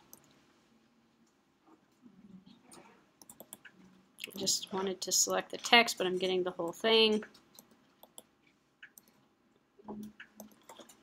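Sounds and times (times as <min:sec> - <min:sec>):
computer mouse clicks: 0:02.7 - 0:04.4, 0:07.1 - 0:09.2, 0:09.9 - 0:11.0.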